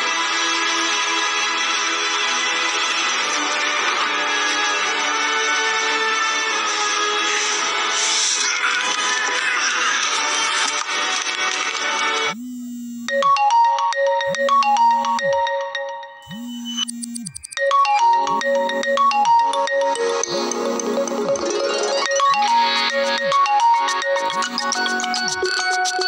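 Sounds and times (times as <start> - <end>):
electronic phone ringtone: 12.4 - 26.0
background music: 13.1 - 26.0.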